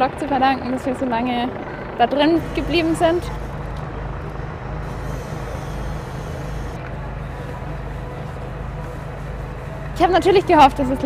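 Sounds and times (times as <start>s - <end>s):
constant rushing noise: 0.0s - 11.0s
motor humming: 1.7s - 10.9s.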